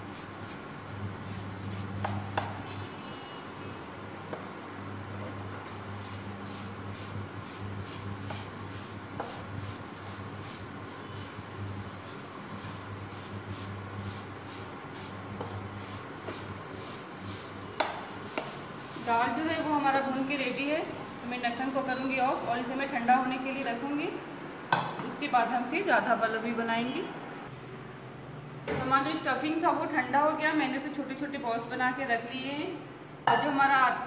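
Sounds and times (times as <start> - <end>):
cooktop hum: 0.0 - 27.5
light sizzle: 0.0 - 27.5
spatula scraping pan: 0.1 - 3.2, 4.3 - 23.7
spatula knocking on pan: 2.0 - 2.7, 17.8 - 18.6.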